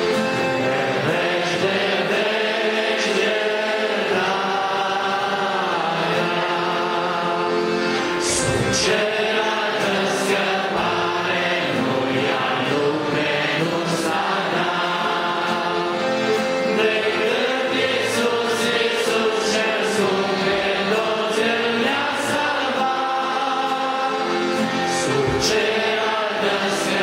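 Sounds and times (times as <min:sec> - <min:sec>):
congregation singing a hymn: 0:00.0 - 0:27.0.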